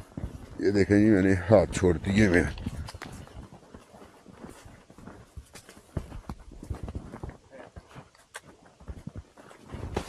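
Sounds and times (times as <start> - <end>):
horse hooves on packed snow: 0.0 - 10.0.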